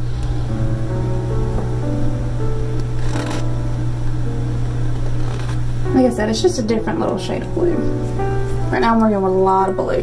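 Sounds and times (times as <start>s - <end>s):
steady low drone: 0.0s - 8.8s
slow background music: 0.0s - 10.0s.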